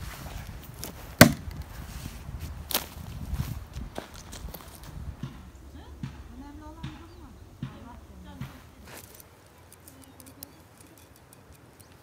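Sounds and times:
hatchet chopping wooden log: 1.2s - 1.6s, 5.2s - 8.7s.

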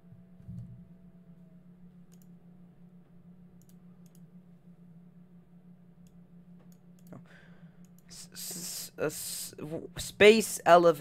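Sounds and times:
steady low hum: 0.0s - 11.0s
low thump: 0.4s - 0.9s.

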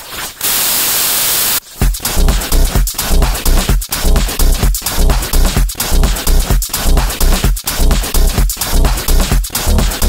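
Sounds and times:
white-noise static burst: 0.0s - 1.6s
electronic techno music: 1.7s - 10.0s
heavy bass kicks: 1.8s - 10.0s.

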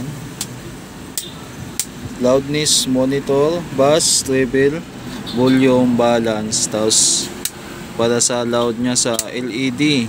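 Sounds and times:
toggle switch clicks: 1.2s - 2.0s, 8.6s - 9.4s.

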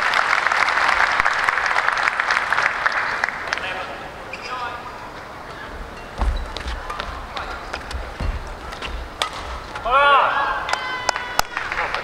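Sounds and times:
rackets striking shuttlecock: 6.0s - 9.9s
feet thudding on court: 6.2s - 9.8s.

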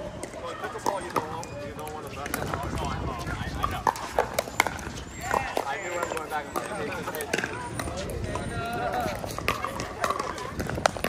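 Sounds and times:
paddles hitting plastic ball: 0.2s - 11.0s.

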